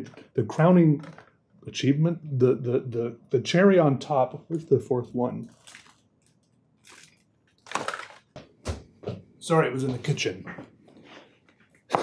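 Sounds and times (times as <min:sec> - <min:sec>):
objects clattering and scraping: 0:01.0 - 0:01.4, 0:07.6 - 0:08.9.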